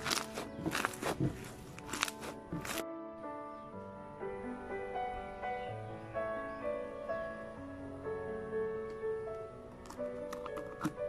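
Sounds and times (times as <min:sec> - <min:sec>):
wet slime squishing: 0:00.0 - 0:02.8
background music: 0:00.0 - 0:11.0.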